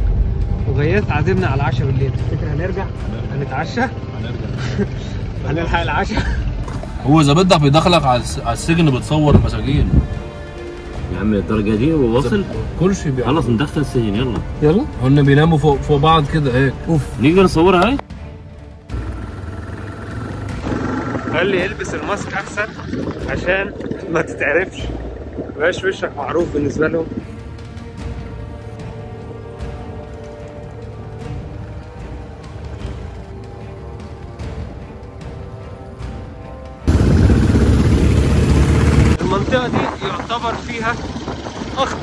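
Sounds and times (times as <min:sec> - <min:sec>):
motorcycle engine running: 0:00.0 - 0:05.7, 0:18.8 - 0:26.1, 0:36.8 - 0:42.0
road noise: 0:00.0 - 0:42.0.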